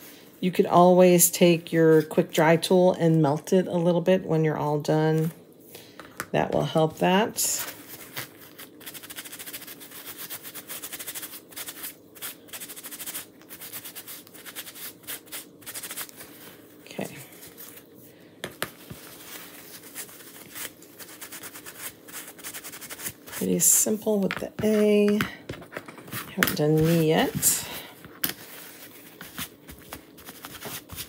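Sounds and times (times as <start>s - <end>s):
faint steady hum: 0.0s - 31.0s.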